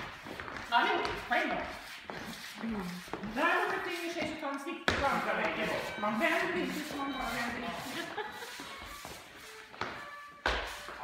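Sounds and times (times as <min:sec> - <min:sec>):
shoes shuffling on wooden floor: 0:00.0 - 0:11.0.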